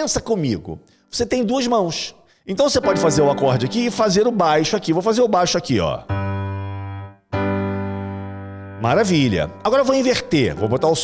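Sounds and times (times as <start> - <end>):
piano chord: 2.8 - 4.8, 6.0 - 11.0.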